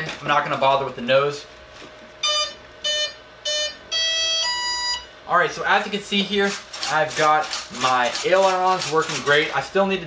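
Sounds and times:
short electronic beeps: 2.2 - 5.1.

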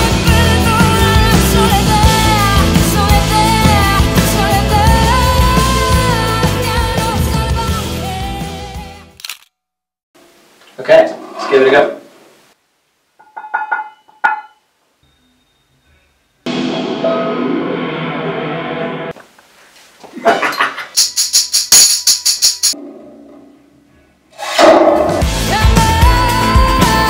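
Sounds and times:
full band music: 0.0 - 8.6, 25.0 - 27.0
hand percussion clicks: 21.0 - 22.8
shaking jingle: 21.0 - 22.8.

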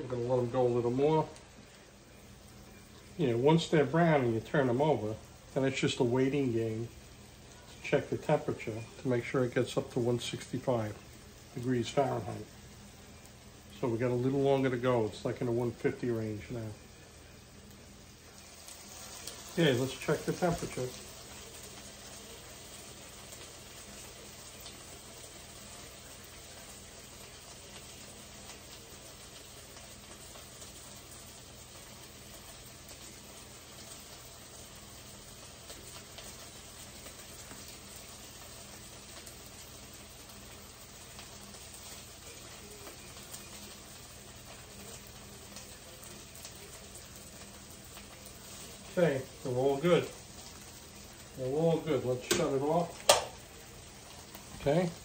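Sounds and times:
burgers sizzling in a skillet: 0.0 - 55.0
frying fat crackling: 0.0 - 55.0.

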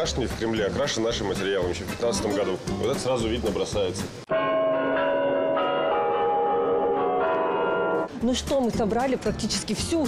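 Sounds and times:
bell-like chiming tones: 4.3 - 8.1.

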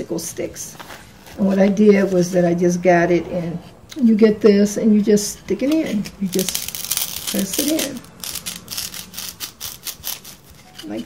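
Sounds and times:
wooden stick squeaking on styrofoam: 5.2 - 11.0.

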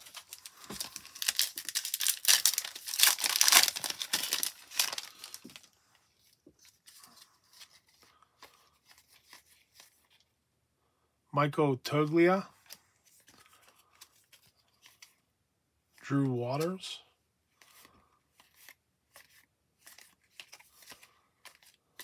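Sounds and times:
plastic wrapper tearing and crinkling: 0.0 - 5.7
cards rustling and clicking: 0.0 - 10.3, 12.0 - 15.2, 16.0 - 16.8, 17.5 - 22.0.

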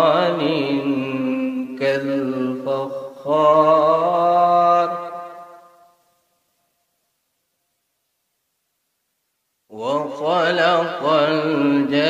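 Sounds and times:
man chanting melodically: 0.0 - 5.9, 9.7 - 12.0.

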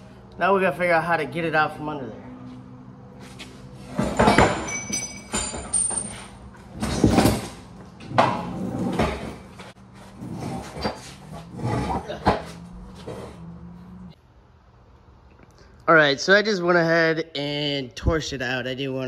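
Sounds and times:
metal clanks and scrapes: 3.2 - 13.5.

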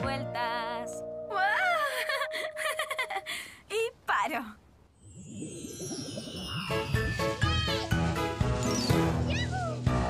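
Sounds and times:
woman giggling: 1.5 - 3.5.

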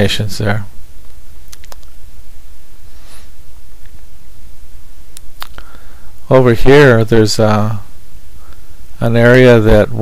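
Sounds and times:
low electrical hum: 0.0 - 10.0
soft brief hiss: 2.9 - 3.4.

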